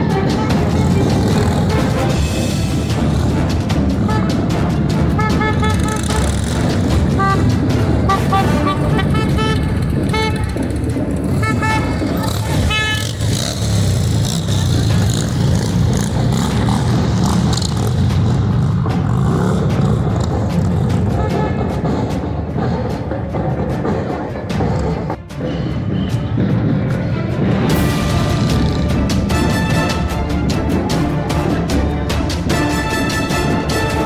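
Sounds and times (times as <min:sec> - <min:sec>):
motorcycle engines rumbling: 0:00.0 - 0:34.0
short horn toots: 0:11.3 - 0:13.6.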